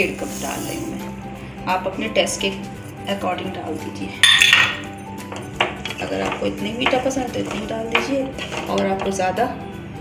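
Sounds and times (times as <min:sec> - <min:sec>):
steel kitchenware clink: 0:04.2 - 0:04.9.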